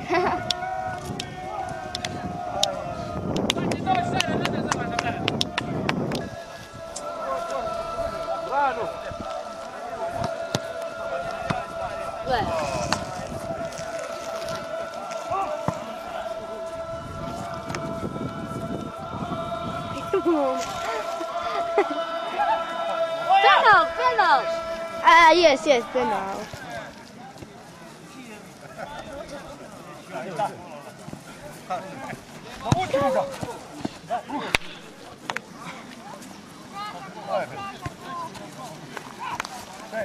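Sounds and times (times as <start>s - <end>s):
people calling out: 0.0s - 27.0s.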